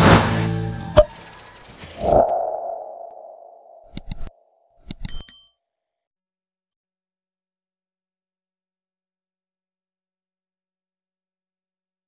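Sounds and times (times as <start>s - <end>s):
mid-pitched tone: 2.0s - 4.0s.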